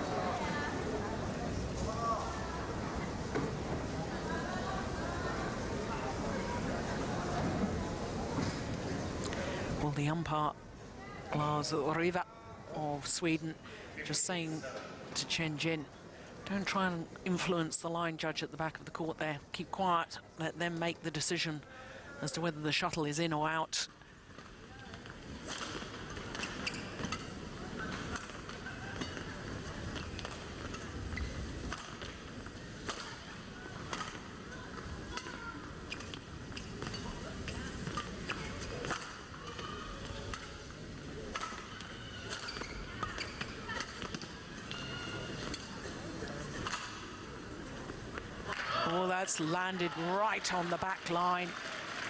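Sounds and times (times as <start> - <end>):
crowd noise: 0.0 - 52.0.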